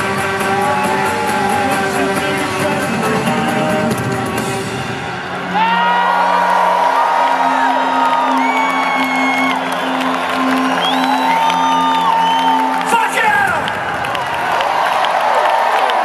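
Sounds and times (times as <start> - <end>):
crowd cheering and whistling: 0.0 - 3.3, 3.9 - 16.0.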